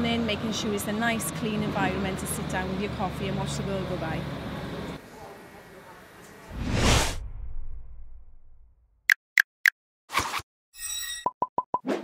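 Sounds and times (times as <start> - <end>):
whoosh: 6.5 - 8.8.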